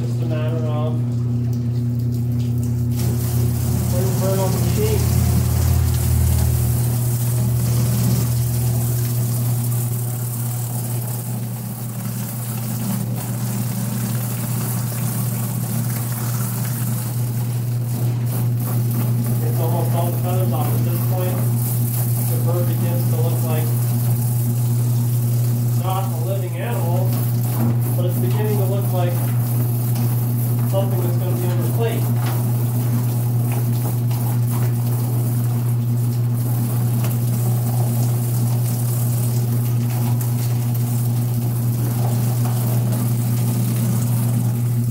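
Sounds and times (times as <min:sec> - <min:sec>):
feather plucker motor humming: 0:02.8 - 0:18.6.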